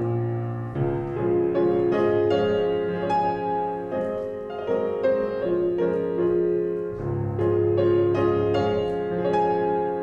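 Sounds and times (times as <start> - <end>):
piano accompaniment: 0.0 - 10.0.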